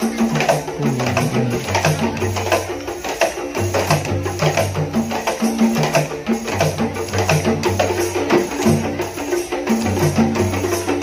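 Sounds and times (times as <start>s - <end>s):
frame drums struck: 0.0s - 11.0s.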